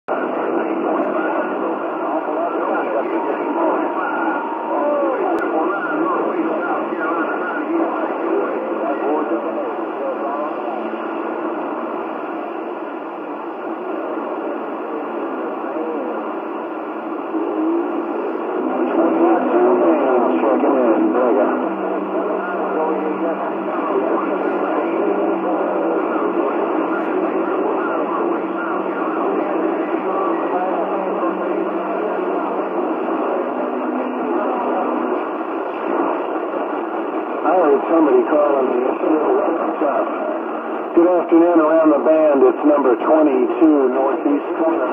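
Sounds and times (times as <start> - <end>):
garbled radio voices: 0.1 - 44.9
heterodyne tones: 2.7 - 6.4.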